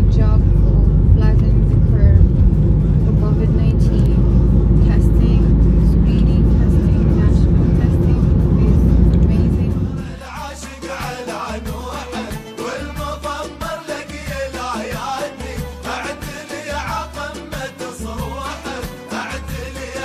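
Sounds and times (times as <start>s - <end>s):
road and engine rumble in car: 0.0s - 10.2s.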